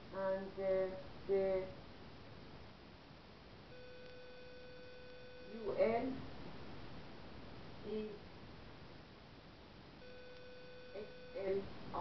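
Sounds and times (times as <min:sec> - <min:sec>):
faint room hiss: 0:00.0 - 0:12.0
steady electronic beep tone: 0:03.7 - 0:05.6, 0:10.0 - 0:11.4.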